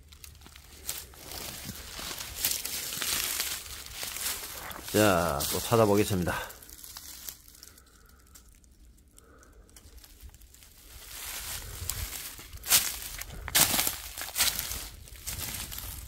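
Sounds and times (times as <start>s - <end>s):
footsteps crunching dry leaves: 0.0s - 8.6s, 9.8s - 16.0s.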